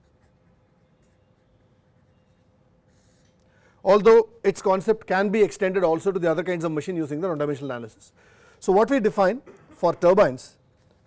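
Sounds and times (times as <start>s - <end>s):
marker pen writing on paper: 0.0s - 3.4s
faint steady hum: 0.0s - 11.0s
man speaking: 3.8s - 10.6s.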